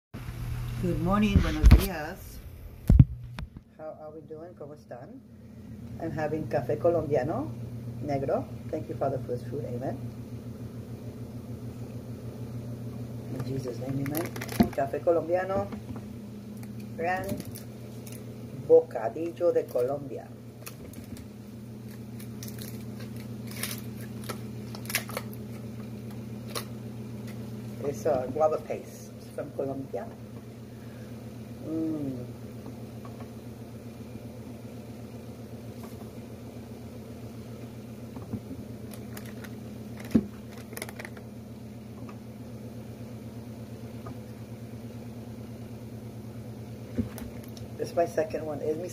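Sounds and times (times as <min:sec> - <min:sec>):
low motor hum: 0:00.2 - 0:48.9.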